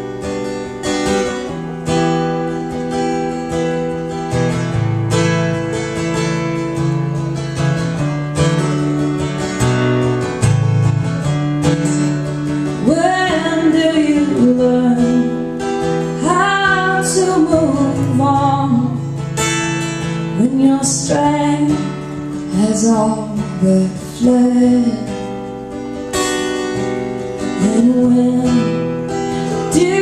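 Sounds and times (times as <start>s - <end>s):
acoustic guitar strumming chords: 0.0s - 30.0s
woman singing: 12.5s - 25.6s, 26.7s - 30.0s.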